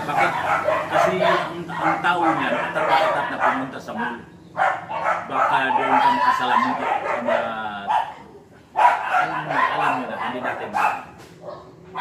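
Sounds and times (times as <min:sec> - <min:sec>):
dog barking: 0:00.0 - 0:12.0.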